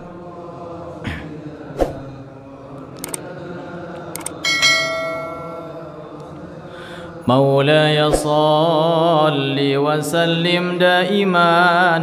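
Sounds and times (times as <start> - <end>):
short clicks: 3.0 - 3.3
bright bell chime ringing: 4.4 - 5.9.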